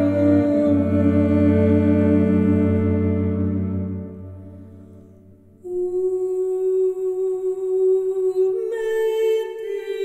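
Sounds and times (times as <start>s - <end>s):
wordless female voice singing: 0.0s - 3.4s, 5.6s - 10.0s.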